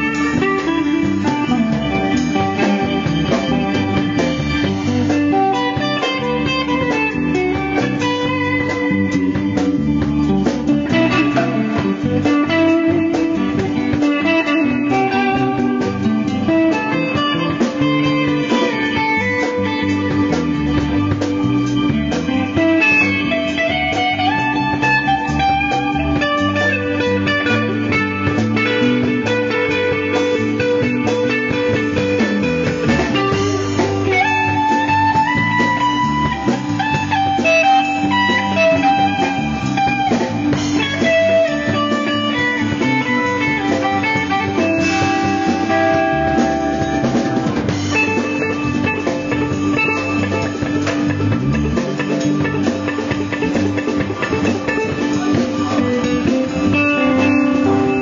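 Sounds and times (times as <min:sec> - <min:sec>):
band playing instrumental: 0:00.0 - 0:58.0
electric guitar sliding melody: 0:00.0 - 0:58.0.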